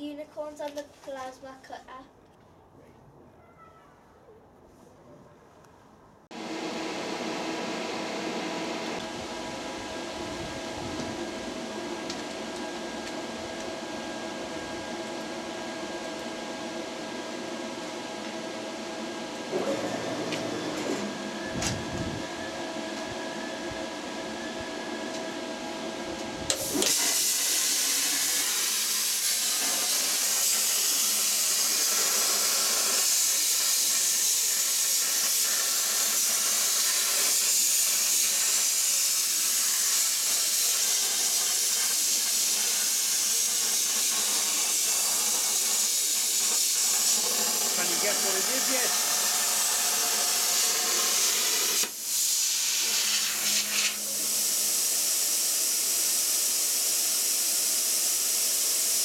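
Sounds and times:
plasma cutter hissing: 0:26.5 - 0:59.0.

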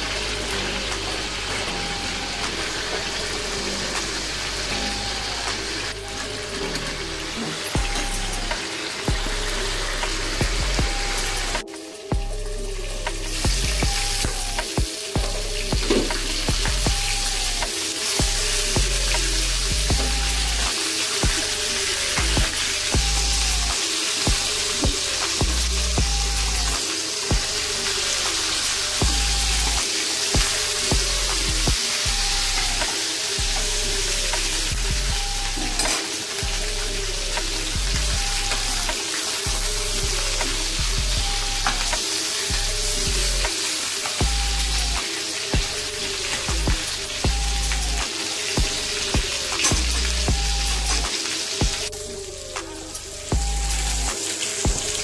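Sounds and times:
background music with bass line: 0:00.0 - 0:55.0
chicken sizzling in oil: 0:00.0 - 0:55.0.

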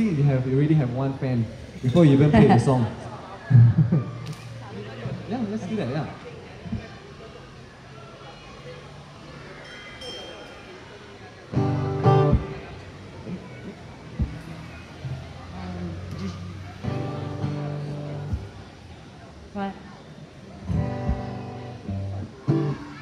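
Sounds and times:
acoustic guitar chord strummed: 0:11.5 - 0:12.8, 0:16.8 - 0:18.5, 0:20.7 - 0:23.0.

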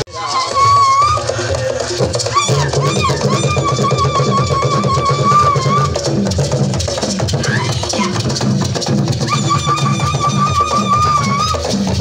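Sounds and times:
steady drumbeat: 0:00.2 - 0:12.0.

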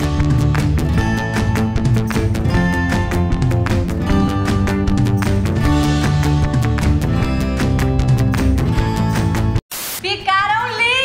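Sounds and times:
background music: 0:00.0 - 0:09.6
hiss burst: 0:09.7 - 0:10.1.

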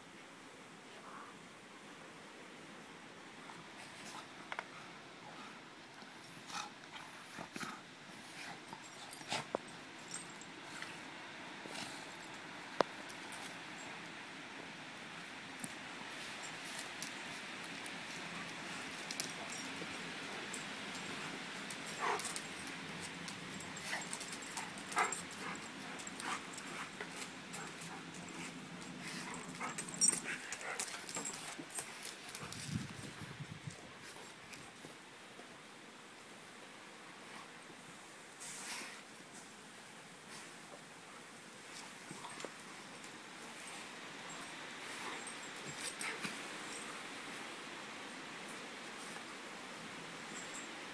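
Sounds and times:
dogs scuffling on paving: 0:15.1 - 0:35.0.

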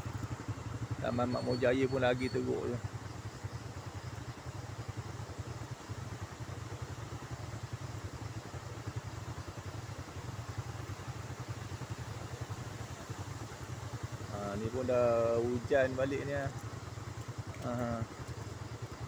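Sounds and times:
rushing flood river: 0:00.0 - 0:19.0.

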